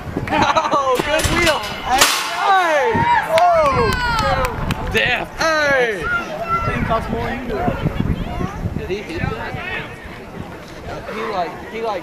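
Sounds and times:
people shouting: 1.8 - 4.6.

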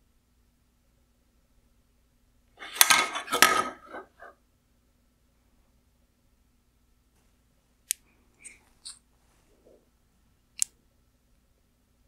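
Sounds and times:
circuit board clattering on wood: 2.6 - 4.1.

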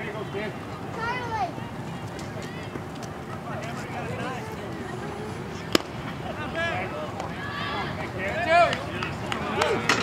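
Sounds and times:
murmur of spectators: 0.0 - 10.0
sharp bat crack: 5.7 - 6.0.

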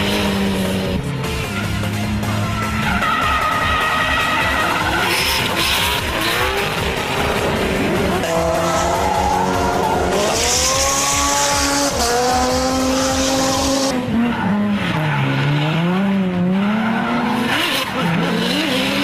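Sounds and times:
racing car engine revving: 0.0 - 19.0.

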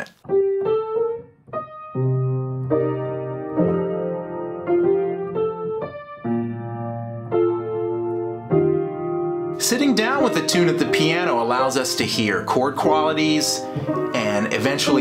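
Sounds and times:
upright piano playing chords: 0.0 - 15.0.

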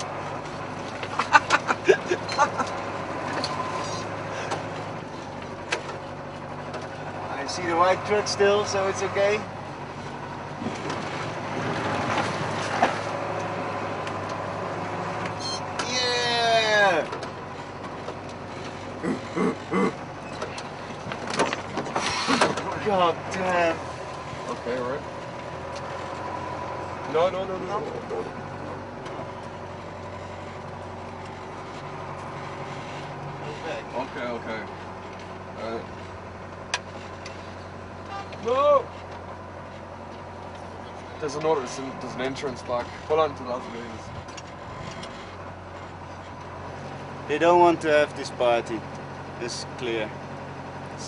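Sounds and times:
vehicle engine running: 0.0 - 51.0.

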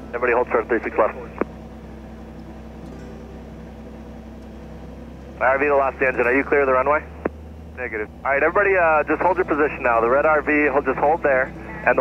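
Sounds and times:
aircraft piston engine idling: 0.0 - 12.0.

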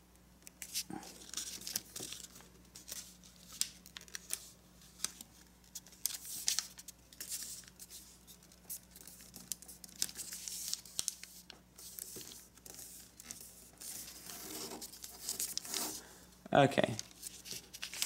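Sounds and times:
paper rustling and crinkling: 0.6 - 16.1, 16.8 - 18.0.

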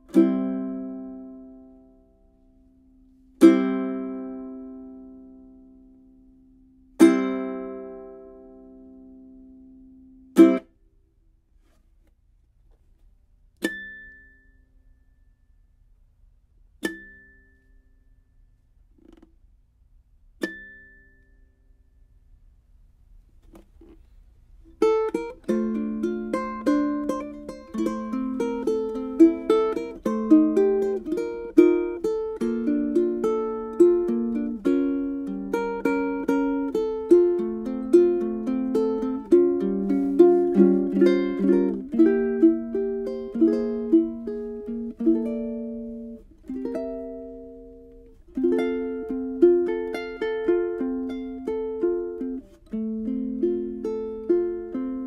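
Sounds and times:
fingerstyle ukulele melody: 0.0 - 10.9, 13.6 - 15.3, 16.7 - 18.3, 18.9 - 19.3, 20.4 - 21.9, 23.4 - 55.0.

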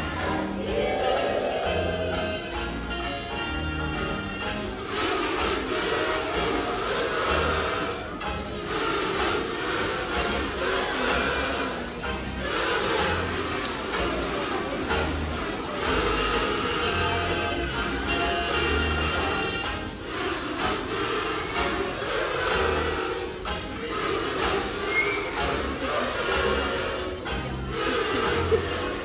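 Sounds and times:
children humming through kazoos: 0.0 - 29.0
music: 0.0 - 29.0.

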